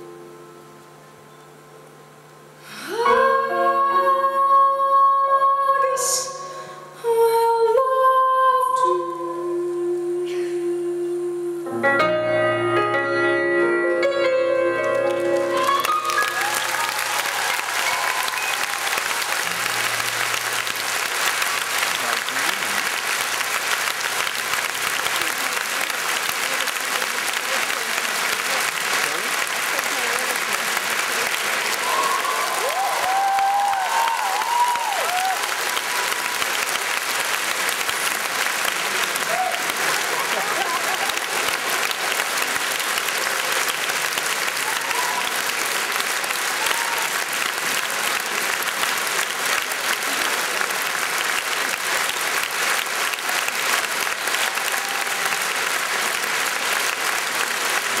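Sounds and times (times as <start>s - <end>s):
audience applauding: 14.8s - 58.0s.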